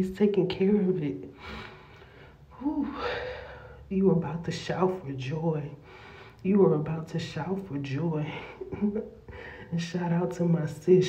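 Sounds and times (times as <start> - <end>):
woman gasping: 1.4 - 3.8
woman speaking: 2.6 - 3.3.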